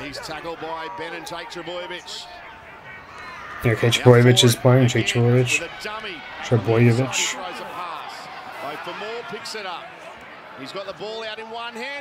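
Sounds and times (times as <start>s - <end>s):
sports commentator speaking: 0.0s - 2.4s, 3.6s - 9.9s, 10.6s - 12.0s.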